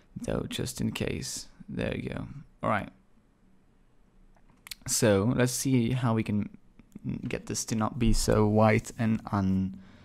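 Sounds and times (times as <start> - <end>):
person speaking: 4.7 - 9.8.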